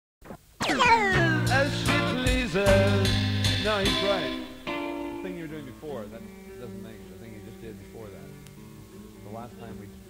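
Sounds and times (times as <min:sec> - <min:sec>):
bass notes: 0:00.6 - 0:05.4
bending sliding guitar notes: 0:00.6 - 0:06.6.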